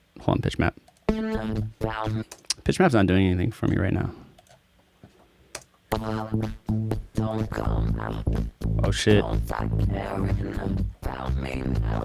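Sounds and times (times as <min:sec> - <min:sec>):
stuttering vocoder synth chords: 0:01.1 - 0:02.4, 0:05.9 - 0:12.0.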